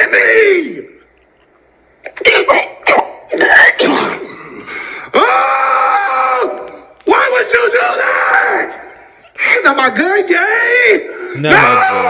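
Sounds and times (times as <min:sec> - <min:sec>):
man coughing: 0:02.1 - 0:04.8.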